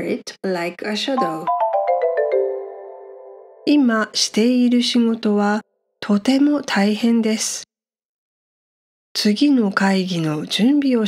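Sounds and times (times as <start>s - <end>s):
descending chime jingle: 1.2s - 3.7s.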